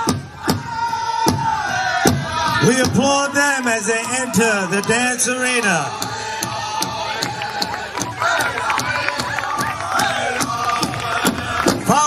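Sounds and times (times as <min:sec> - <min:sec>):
crowd noise: 0:00.0 - 0:12.0
fast steady drumbeat: 0:00.0 - 0:12.0.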